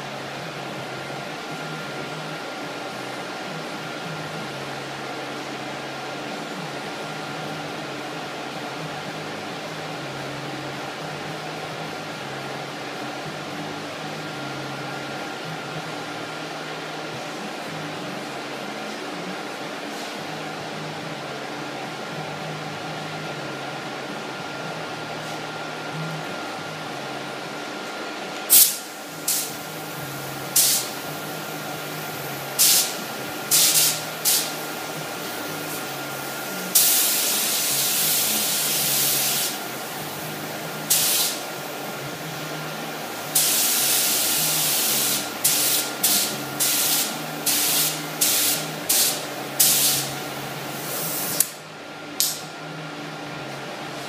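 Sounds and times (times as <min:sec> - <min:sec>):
exhaust fans humming: 0:00.0 - 0:54.0
spray gun hissing: 0:30.5 - 0:31.0, 0:32.6 - 0:34.6, 0:36.7 - 0:39.6, 0:40.9 - 0:41.5, 0:43.3 - 0:51.4.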